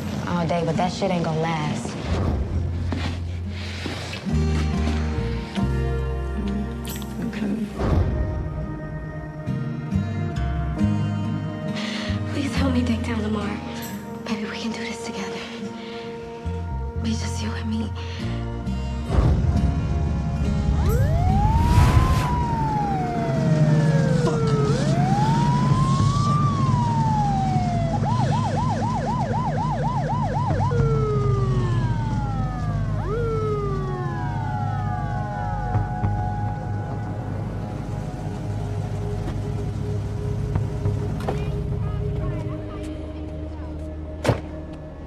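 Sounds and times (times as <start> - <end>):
low steady rumble: 18.6 - 44.1
police siren wailing: 20.7 - 41.2.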